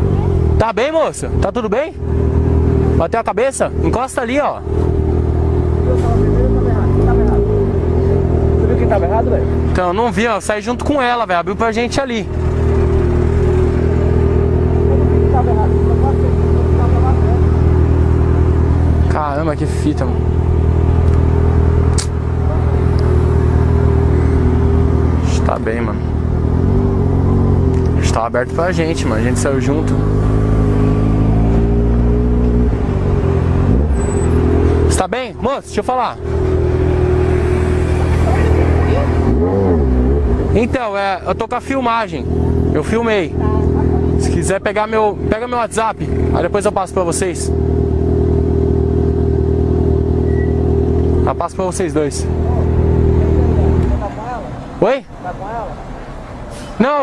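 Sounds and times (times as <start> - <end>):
motorcycle engine running: 0.0 - 54.4.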